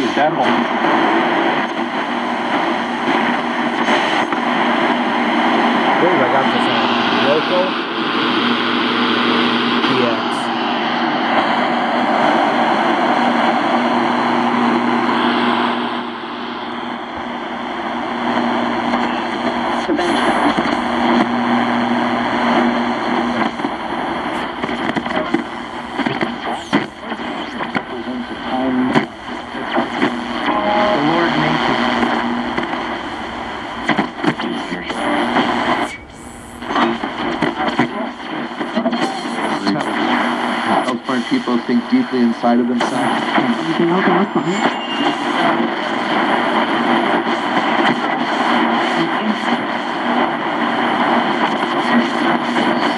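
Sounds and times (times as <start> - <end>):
faint broken radio voices: 0.0 - 52.9
radio static hiss: 0.0 - 52.9.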